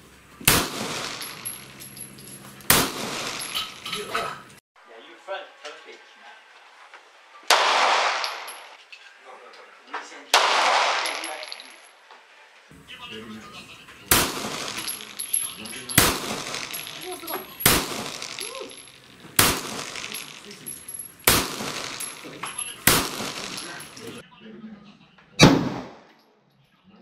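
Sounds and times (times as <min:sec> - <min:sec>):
pistol shots with echo: 0:00.5 - 0:01.6, 0:02.7 - 0:03.6, 0:07.5 - 0:08.7, 0:10.3 - 0:11.6, 0:14.1 - 0:18.8, 0:19.4 - 0:24.2, 0:25.4 - 0:26.0.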